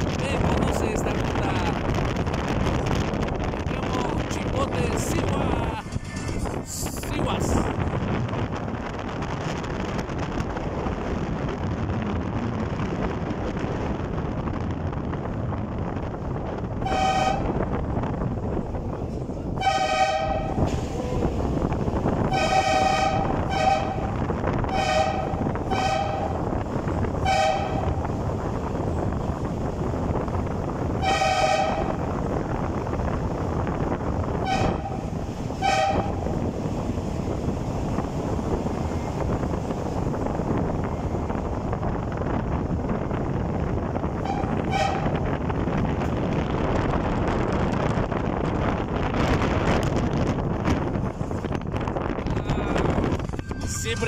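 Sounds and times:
road and wind noise: 0.0s - 54.0s.

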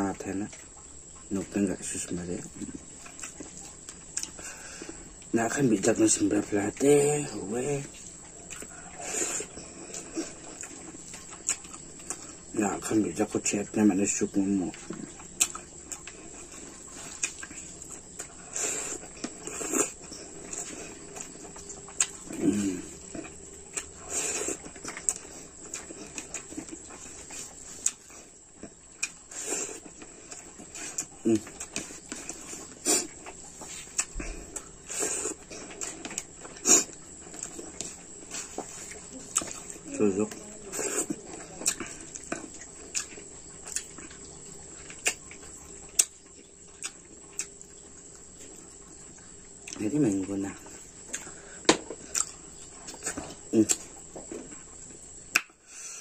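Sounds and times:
insects chirring: 0.0s - 56.0s
chewing and lip smacking: 0.1s - 12.6s, 14.1s - 55.6s
man speaking: 1.3s - 2.6s, 5.4s - 7.9s, 39.9s - 40.5s, 49.8s - 50.6s
wet mouth clicks: 4.2s - 4.4s, 44.9s - 45.2s, 45.9s - 46.2s, 46.8s - 47.6s, 52.0s - 53.9s, 55.3s - 55.6s.

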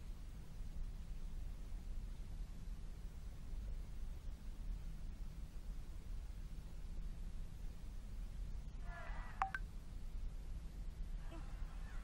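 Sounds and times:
low background hum: 0.0s - 12.0s
short electronic beeps: 9.4s - 9.6s.

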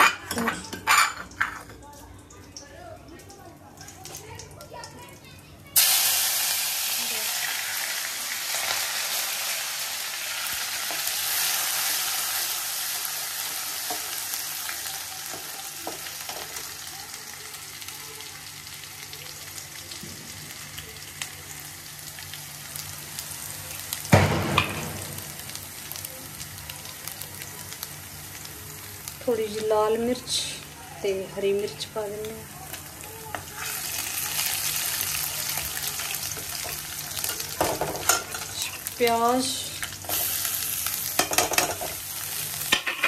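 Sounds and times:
food sizzling in hot oil: 2.3s - 43.0s.

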